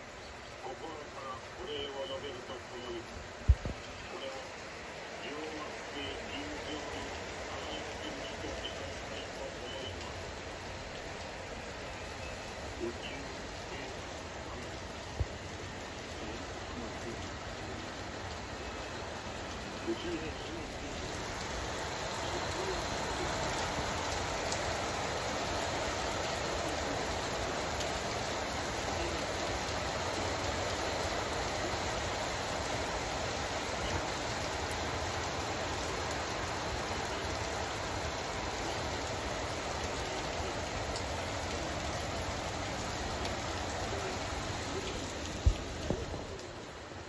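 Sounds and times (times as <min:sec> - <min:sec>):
steady rain falling: 0:00.0 - 0:47.0.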